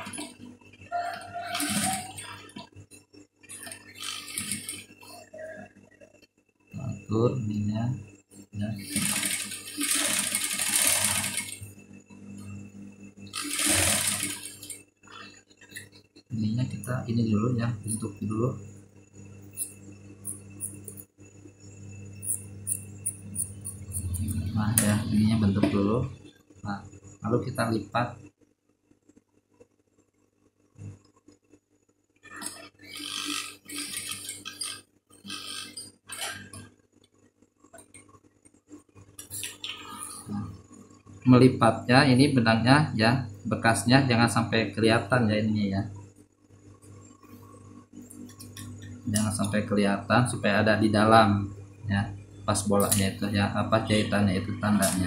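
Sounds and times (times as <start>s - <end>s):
industrial sewing machine stitching: 1.5s - 2.4s, 3.5s - 5.0s, 8.6s - 11.7s, 13.3s - 14.8s, 32.4s - 36.4s.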